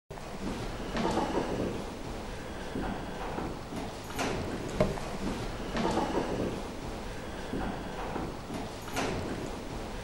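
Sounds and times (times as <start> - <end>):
sharp knock: 4.8 - 5.0.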